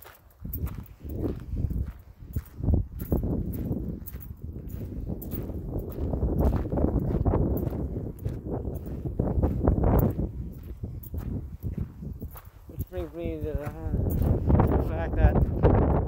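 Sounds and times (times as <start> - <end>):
footsteps walking outdoors: 0.0 - 16.0.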